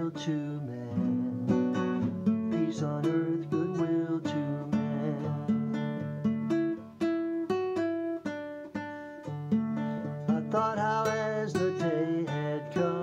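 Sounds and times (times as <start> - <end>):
classical guitar solo: 0.0 - 13.0.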